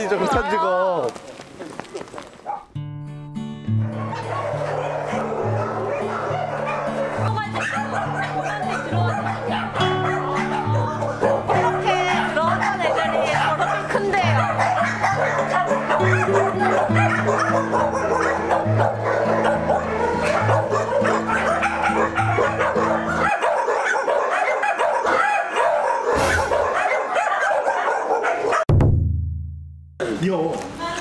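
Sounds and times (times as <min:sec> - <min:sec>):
puppies barking and yipping: 0:02.4 - 0:02.7, 0:03.8 - 0:28.7
short low hit: 0:28.7 - 0:30.0.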